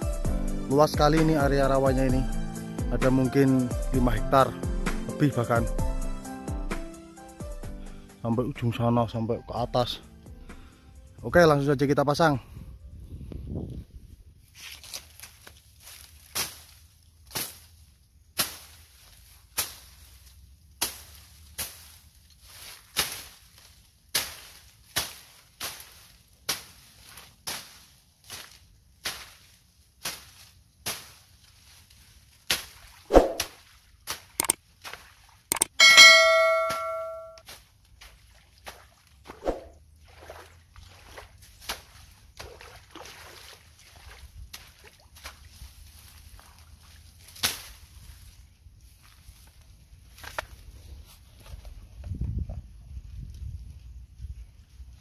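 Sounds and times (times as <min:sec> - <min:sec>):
ringing metallic clang: 0:35.5 - 0:37.4.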